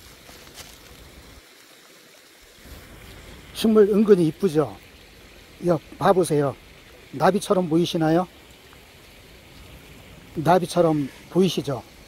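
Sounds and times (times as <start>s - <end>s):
wind through forest: 0.0s - 12.0s.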